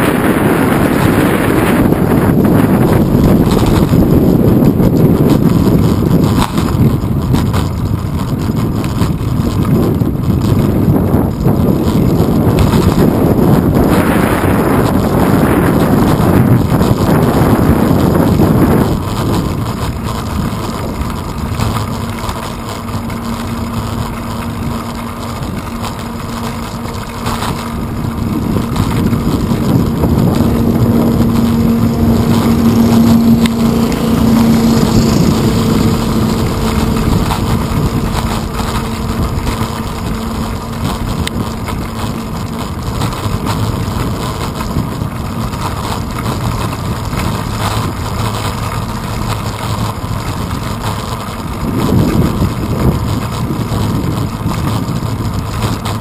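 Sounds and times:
passing engine hum: 0.0s - 56.0s
wind and riding noise: 0.0s - 56.0s.

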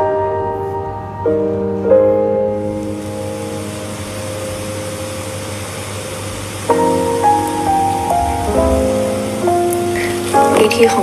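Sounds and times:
soft piano music: 0.0s - 11.0s
steady hiss: 0.0s - 11.0s.

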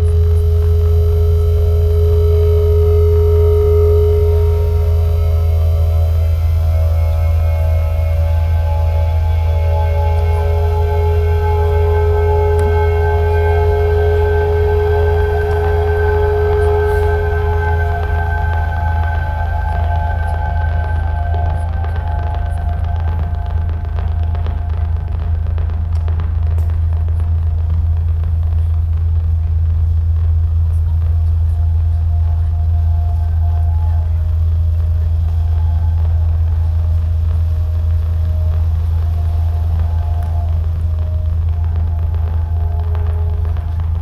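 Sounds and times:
faint held tones: 0.0s - 44.0s
loud low rumble: 0.0s - 44.0s.

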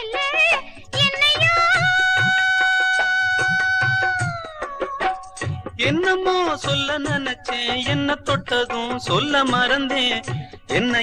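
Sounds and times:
regular drum beat: 0.0s - 11.0s.

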